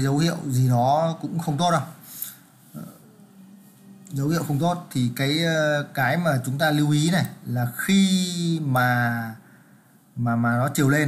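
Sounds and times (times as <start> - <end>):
man breathing: 9.4 - 10.1.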